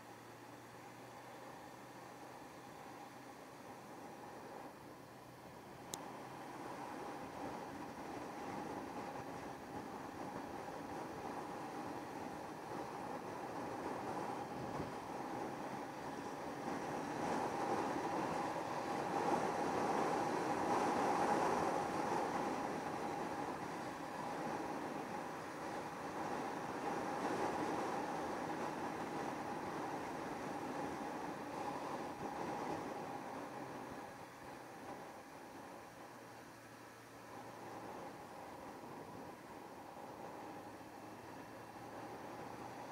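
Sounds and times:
wind and road noise: 0.0s - 42.9s.

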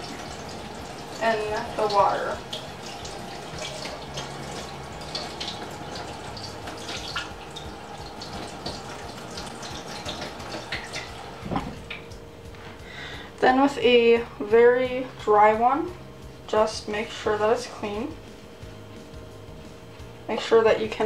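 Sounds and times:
faucet running into sink: 0.0s - 12.0s.

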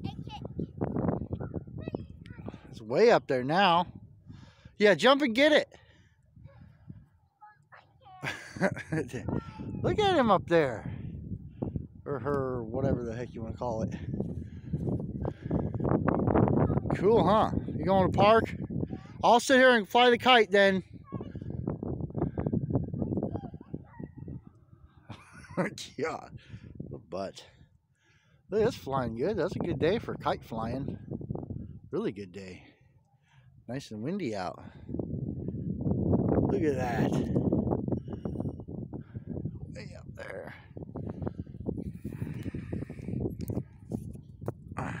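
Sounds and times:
wind buffeting microphone: 0.0s - 5.0s, 5.8s - 7.3s, 8.2s - 27.8s, 28.4s - 45.0s.

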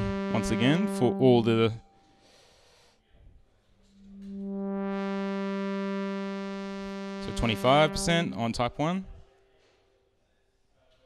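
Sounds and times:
buzzy synthesizer tone: 0.0s - 1.9s, 4.0s - 9.1s.

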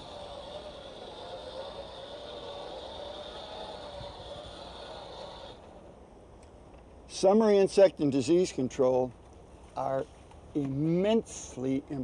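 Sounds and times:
garden blower motor whining: 0.0s - 5.7s.

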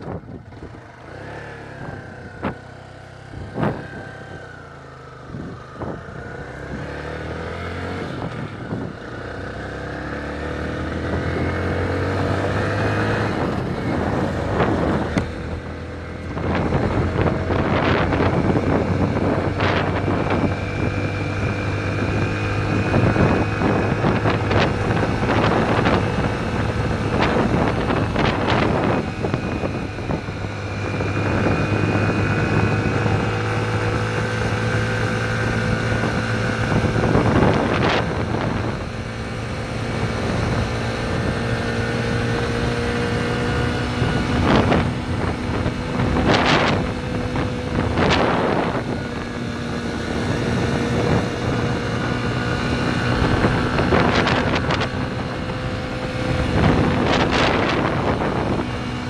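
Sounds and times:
motorcycle engine accelerating: 0.0s - 59.0s
wind on microphone: 0.0s - 59.0s.

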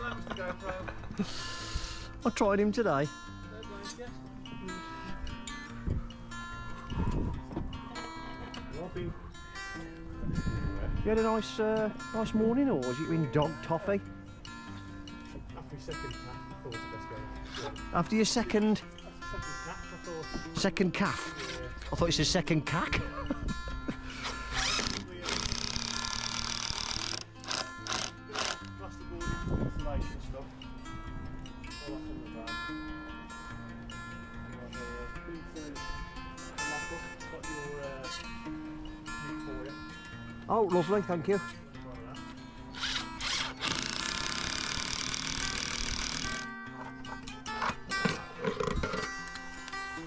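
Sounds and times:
background music: 0.0s - 50.0s
cordless drill driving screw: 24.1s - 28.7s, 42.7s - 46.5s.

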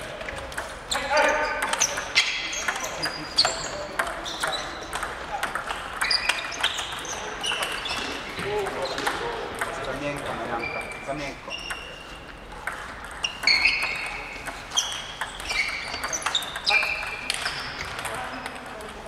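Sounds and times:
table tennis balls clicking: 0.0s - 19.0s.

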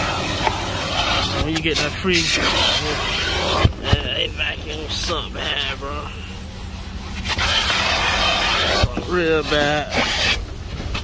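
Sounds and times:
vacuum nozzle sucking on carpet: 0.0s - 3.7s, 7.3s - 10.4s.

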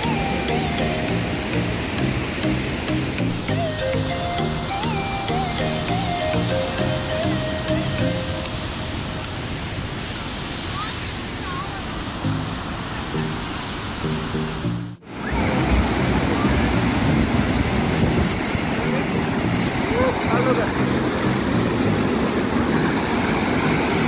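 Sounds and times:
background music: 0.0s - 8.5s, 13.2s - 17.2s, 18.8s - 22.7s
waterfall rushing over rocks: 0.0s - 24.0s.

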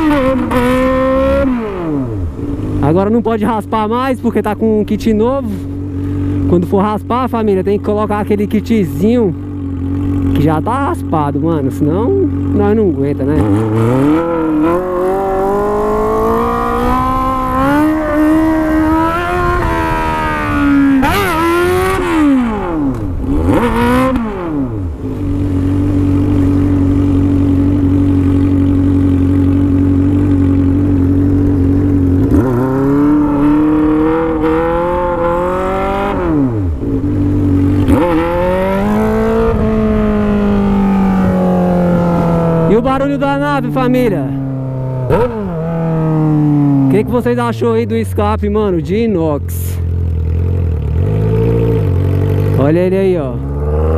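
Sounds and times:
motorcycle engine revving: 0.0s - 53.9s.

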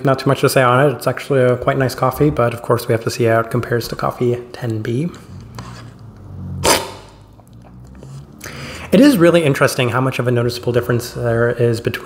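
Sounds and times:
loud coffee slurp: 5.2s - 8.9s.

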